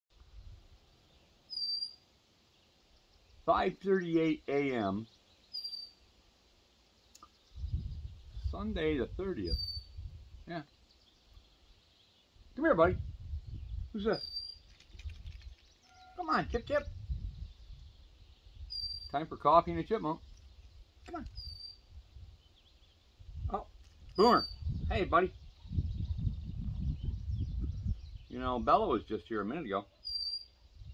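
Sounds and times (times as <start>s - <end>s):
faint high bird chirps: 1.1s - 2.1s, 5.1s - 6.0s, 9.5s - 10.0s, 13.4s - 19.3s, 21.1s - 23.0s, 24.2s - 28.4s, 29.9s - 30.9s
bird whistled call: 1.5s - 2.0s, 15.8s - 16.2s, 18.7s - 19.1s
man speaking a word: 3.5s - 5.0s, 10.5s - 10.7s, 12.6s - 13.0s, 16.1s - 16.9s, 21.1s - 21.3s, 23.5s - 25.4s.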